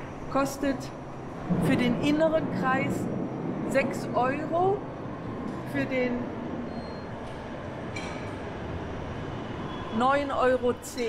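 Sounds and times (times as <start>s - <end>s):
metro train rumble and hiss: 0.0s - 11.0s.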